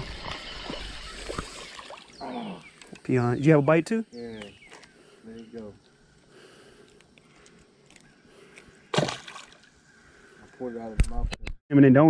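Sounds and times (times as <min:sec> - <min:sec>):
faint water lapping: 0:04.6 - 0:10.8
fish splashing into water: 0:08.9 - 0:09.7.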